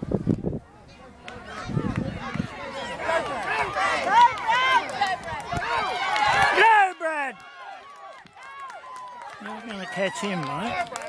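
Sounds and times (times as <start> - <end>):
spectators shouting and cheering: 0.8 - 11.0.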